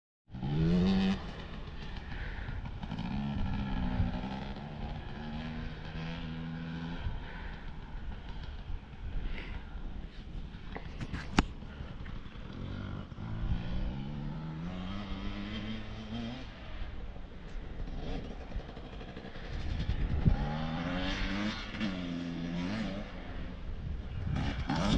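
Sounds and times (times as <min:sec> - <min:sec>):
dirt bike engines revving: 0:00.3 - 0:24.9.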